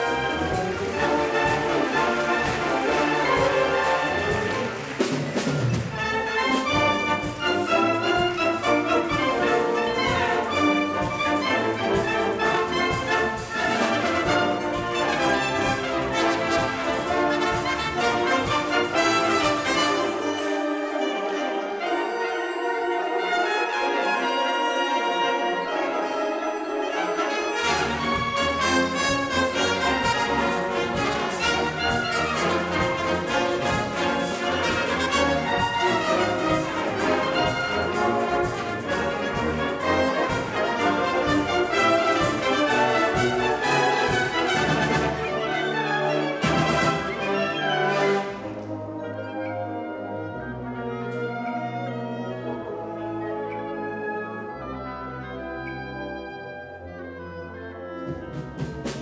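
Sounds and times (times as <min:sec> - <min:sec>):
symphonic wind band playing: 0:00.0 - 0:59.0.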